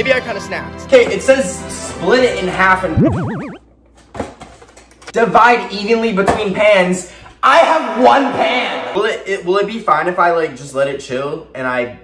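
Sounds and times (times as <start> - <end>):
warbling bouncing tone: 2.9 - 3.6.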